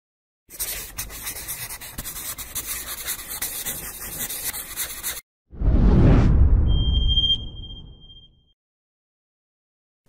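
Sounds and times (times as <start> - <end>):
scratchy rubbing noise: 0.5 - 5.2.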